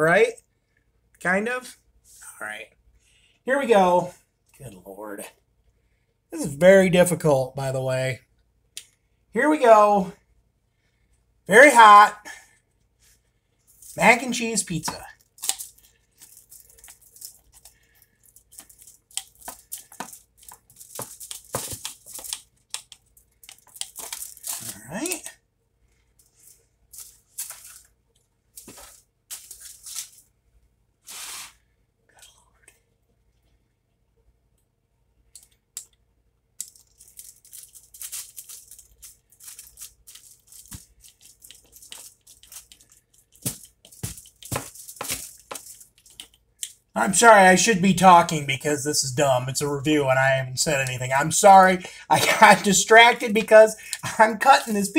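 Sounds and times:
aluminium foil crinkling: 13.7 - 25.3, 26.1 - 30.3, 36.6 - 46.9.

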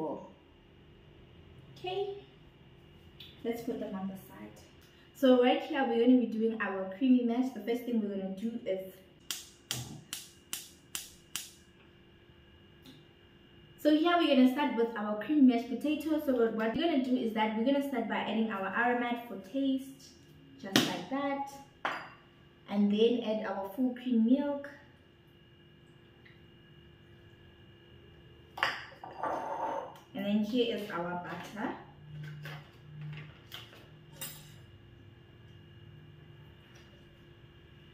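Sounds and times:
faint steady hum: 0.0 - 37.9
gas stove igniter clicking: 9.3 - 11.6
cup clattering into bowl: 28.6 - 30.0.

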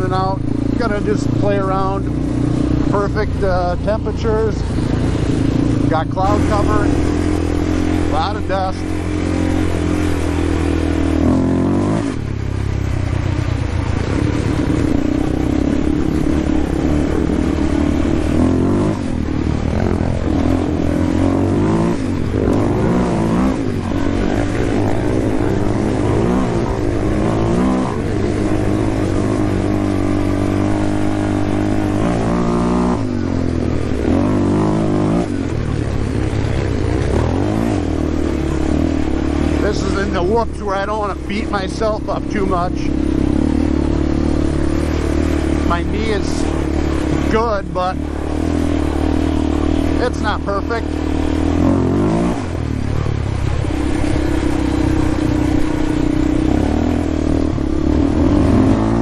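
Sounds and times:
atv engine revving: 0.0 - 59.0.

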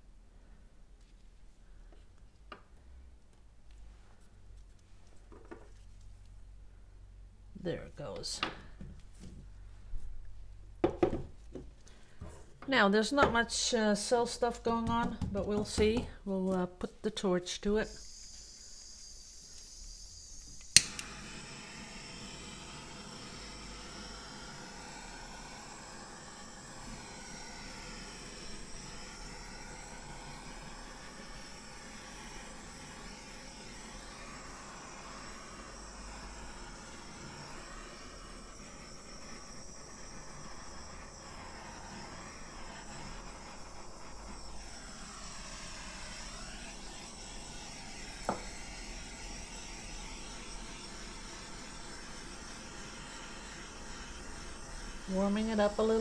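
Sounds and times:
butane torch flame hissing: 17.7 - 56.0.

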